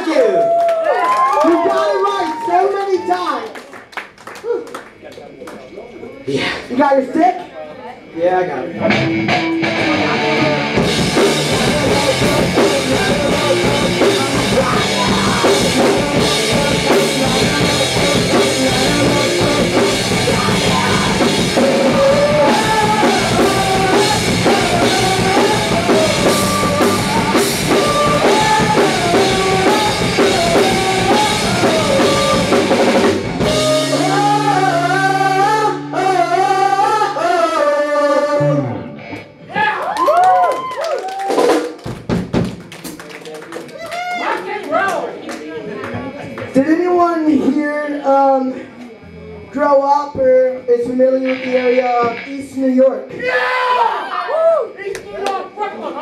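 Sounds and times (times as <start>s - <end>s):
bending sliding guitar notes: 8.6s - 39.6s, 48.7s - 53.3s
live rock band playing: 8.7s - 39.7s, 49.3s - 53.0s.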